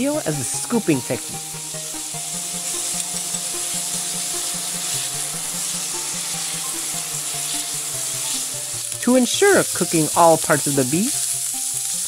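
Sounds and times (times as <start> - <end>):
meat sizzling in a pan: 0.0 - 12.0
quiet background music: 0.0 - 12.0
spatula stirring in pan: 0.7 - 12.0.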